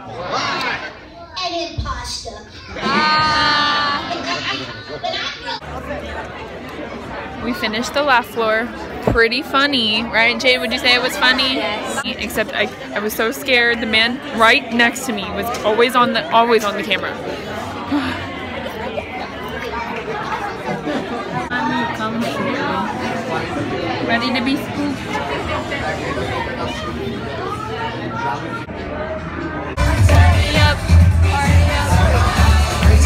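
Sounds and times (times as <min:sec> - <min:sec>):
indistinct crowd chatter: 0:00.0 - 0:33.0.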